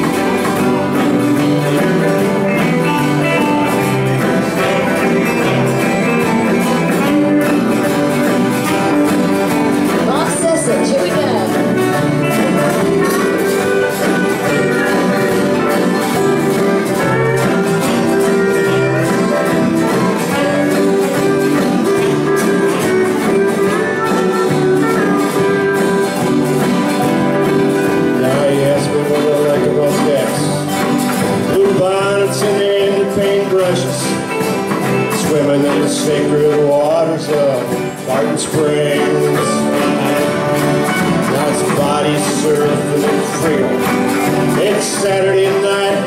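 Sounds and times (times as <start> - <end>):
guitars strumming: 0.0 - 46.0
lead guitar notes: 0.0 - 46.0
live country band playing: 0.0 - 46.0.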